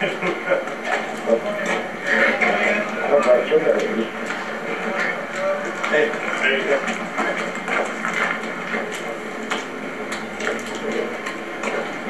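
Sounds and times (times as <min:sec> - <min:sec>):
people talking: 0:00.0 - 0:08.0.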